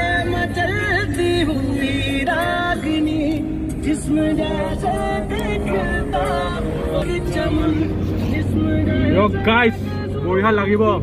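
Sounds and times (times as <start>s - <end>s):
song with singing: 0.0s - 10.5s
car engine hum inside cabin: 0.0s - 11.0s.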